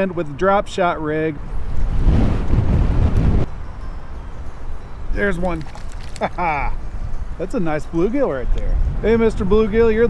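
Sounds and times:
wind buffeting microphone: 1.4s - 3.7s, 5.0s - 10.0s.

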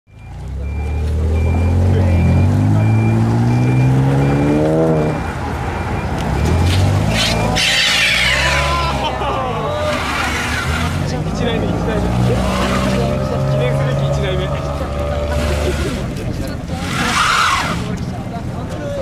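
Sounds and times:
car engine revving: 0.3s - 18.6s
crowd voices and shouts: 7.1s - 19.0s.

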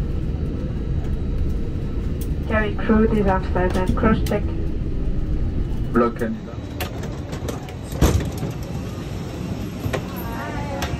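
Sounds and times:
low rumble of aircraft: 0.0s - 10.9s.

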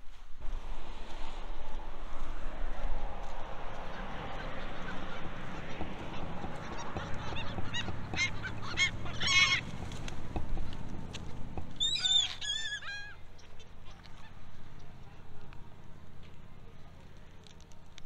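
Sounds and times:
gulls calling: 0.4s - 17.6s.

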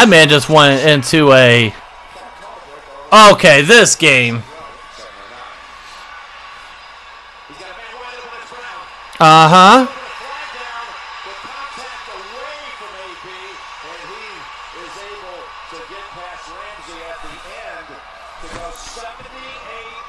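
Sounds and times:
sports commentators talking: 0.0s - 20.0s
stadium crowd noise: 0.0s - 20.0s.

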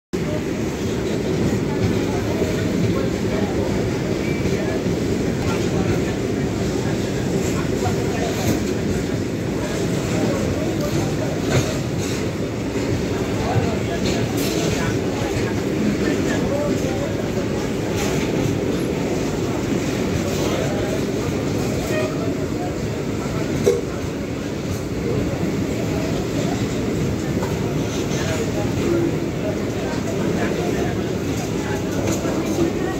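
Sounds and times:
train wheels rumbling on rails: 0.2s - 32.9s.

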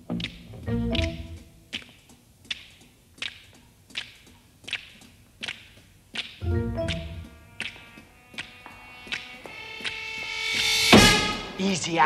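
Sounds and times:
finger snaps: 0.2s - 7.8s
sparse jazz orchestral music: 0.6s - 1.4s, 6.4s - 11.6s
low sustained instrument notes: 6.4s - 11.6s.

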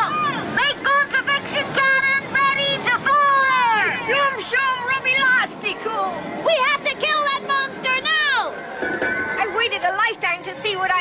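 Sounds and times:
children shouting and crying out: 0.0s - 11.0s.

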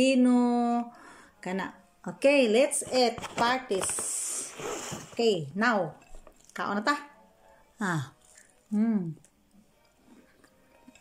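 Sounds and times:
faint chewing with mouth clicks: 7.4s - 11.0s
woman humming in appreciation: 8.7s - 9.3s.

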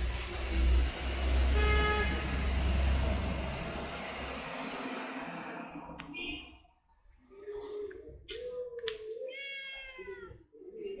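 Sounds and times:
cat meowing: 9.2s - 10.4s.

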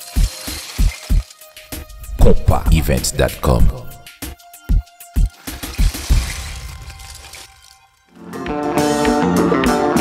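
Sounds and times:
shattering crumbling wash: 0.0s - 1.9s, 5.2s - 8.2s.

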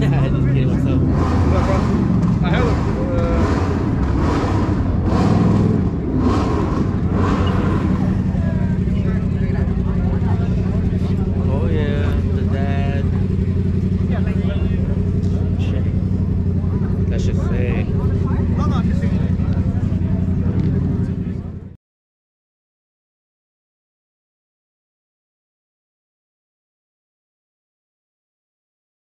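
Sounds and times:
people talking: 0.0s - 5.3s, 6.2s - 21.8s
car engine idling: 0.0s - 21.8s.

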